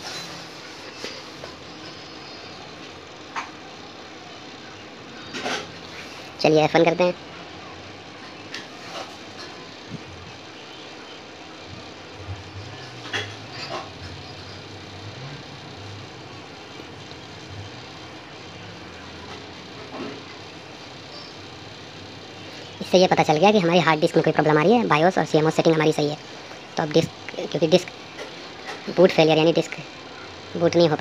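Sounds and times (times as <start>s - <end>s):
desktop computer hum and hiss: 0.0s - 31.0s.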